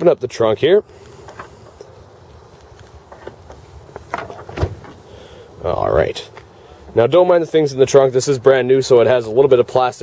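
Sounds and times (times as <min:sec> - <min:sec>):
low outdoor background: 0:00.0 - 0:10.0
trunk latch knocks and thump: 0:04.1 - 0:05.0.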